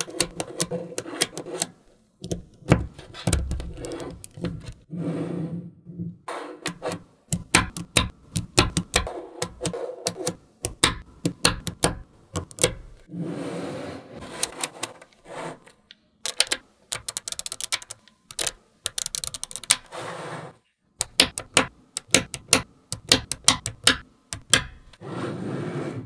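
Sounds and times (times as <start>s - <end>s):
magnetic balls clicking together: 7.3s - 13.1s, 15.9s - 19.9s, 21.0s - 25.0s.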